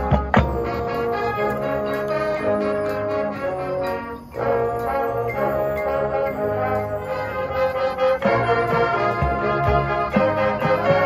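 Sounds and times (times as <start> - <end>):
marching band sustained chord: 0.0 - 11.0
organ-like keyboard: 0.0 - 11.0.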